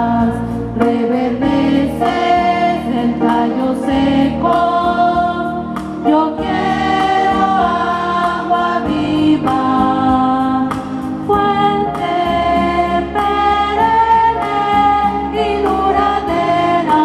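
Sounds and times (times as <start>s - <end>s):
choir singing a hymn: 0.0s - 17.0s.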